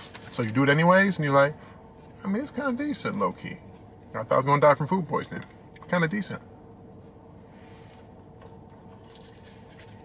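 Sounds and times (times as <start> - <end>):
low steady hum: 0.0 - 10.0
chewing soft wrap: 7.9 - 10.0.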